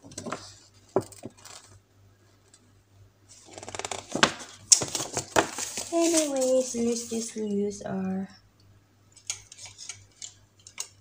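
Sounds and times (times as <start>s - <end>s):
paper rustling: 3.3s - 7.4s.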